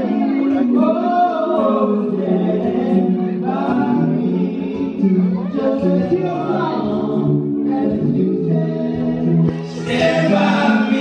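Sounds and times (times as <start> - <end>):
men singing unaccompanied: 0.0 - 11.0.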